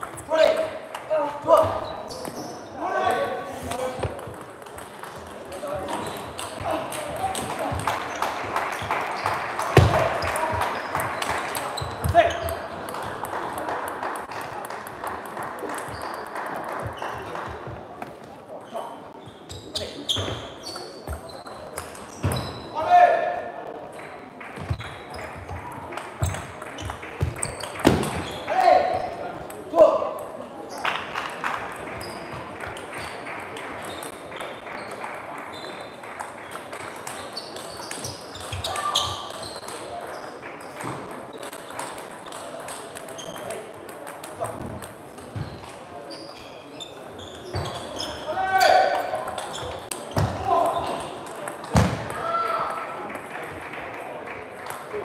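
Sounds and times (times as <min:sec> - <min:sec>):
voices in a hall: 0:00.0 - 0:55.0
table tennis balls clicking: 0:04.0 - 0:17.4, 0:23.9 - 0:28.3, 0:31.5 - 0:45.8.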